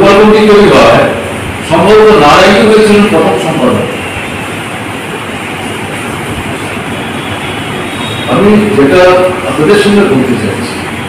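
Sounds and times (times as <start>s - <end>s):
man speaking through a microphone: 0.0s - 4.1s, 8.2s - 10.9s
steady rushing noise: 0.0s - 11.0s.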